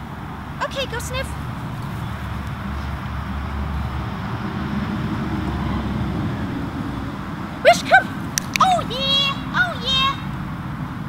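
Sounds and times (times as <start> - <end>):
outdoor rumble and hiss: 0.0 - 11.0
high-pitched calls: 7.6 - 10.4.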